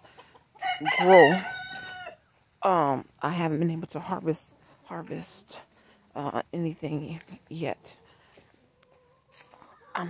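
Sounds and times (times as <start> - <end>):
chickens clucking: 0.0 - 2.5, 3.4 - 10.0.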